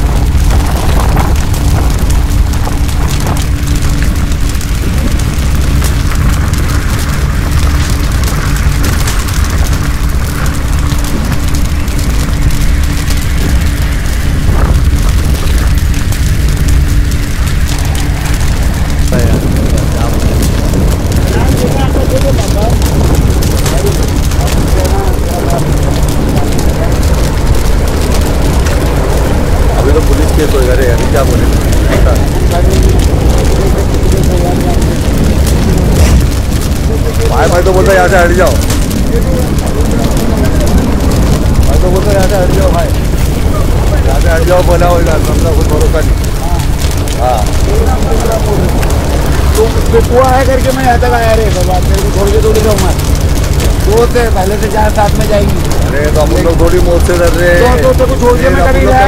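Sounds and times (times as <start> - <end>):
fire crackling: 0.0 - 59.0
fire rumbling: 0.0 - 59.0.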